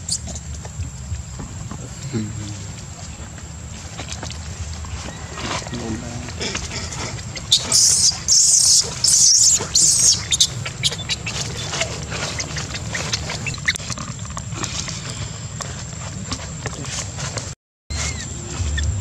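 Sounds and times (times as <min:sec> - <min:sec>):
baby monkey screaming: 0:06.9 - 0:13.8, 0:17.9 - 0:18.9
low rumble: 0:17.9 - 0:19.0.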